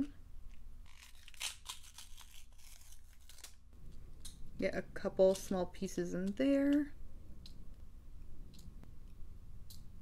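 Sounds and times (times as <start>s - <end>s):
paper label peeling off plastic: 0.8s - 3.6s.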